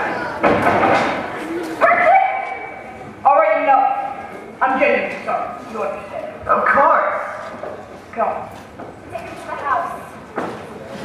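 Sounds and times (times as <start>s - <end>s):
noisy crowd commotion: 0.0s - 11.0s.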